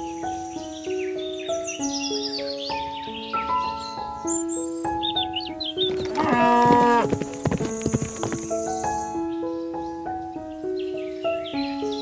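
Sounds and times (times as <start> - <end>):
background music sustained notes: 0.0 - 12.0
cow mooing: 6.1 - 7.2.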